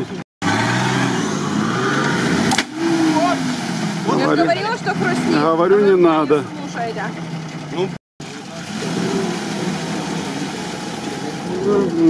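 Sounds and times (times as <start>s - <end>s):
suv engine revving hard: 0.0s - 6.5s, 8.2s - 12.0s.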